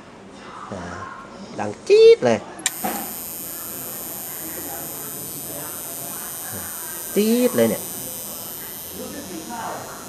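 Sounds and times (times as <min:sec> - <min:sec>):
television power click: 0:02.6 - 0:10.0
high-pitched television squeal: 0:02.7 - 0:10.0.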